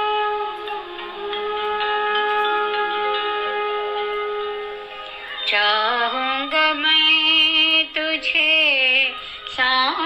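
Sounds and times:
quiet musical accompaniment: 0.0s - 10.0s.

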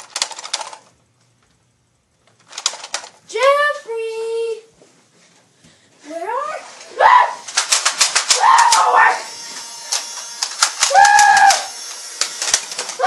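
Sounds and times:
children shouting and whooping: 6.9s - 7.4s, 8.3s - 9.4s, 10.8s - 11.8s
sharp smacking clicks: 7.5s - 8.9s.

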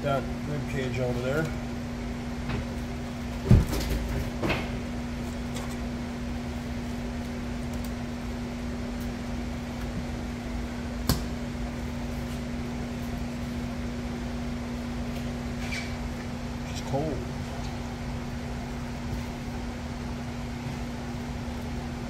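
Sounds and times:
low machine hum: 0.0s - 22.0s.

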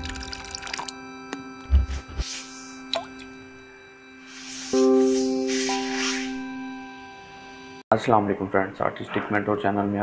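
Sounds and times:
held chord: 0.0s - 7.8s
rising blip: 2.2s - 7.6s.

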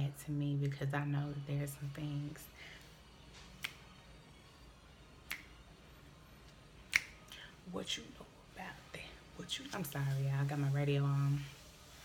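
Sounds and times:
finger snaps: 3.4s - 4.1s, 5.2s - 5.8s, 6.8s - 7.5s.

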